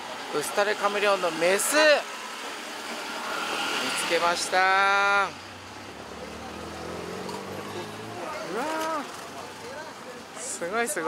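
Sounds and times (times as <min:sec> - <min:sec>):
outdoor background noise: 0:00.0 - 0:11.0
man exclaiming: 0:07.8 - 0:09.1.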